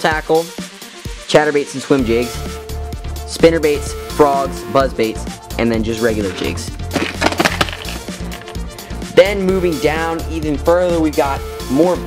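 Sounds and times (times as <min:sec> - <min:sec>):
background music: 0:00.0 - 0:12.0
plastic boxes knocking and rattling: 0:06.4 - 0:08.6.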